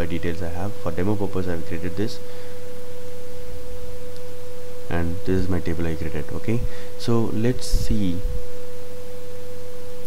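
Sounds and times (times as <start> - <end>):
electrical hum with whining tone: 0.0 - 10.0.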